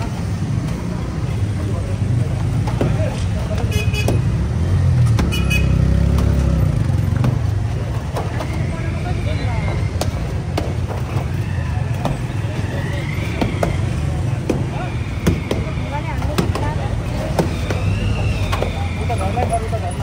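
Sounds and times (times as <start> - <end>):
road traffic rumbling: 0.0 - 20.0
car horn toots: 5.2 - 5.8.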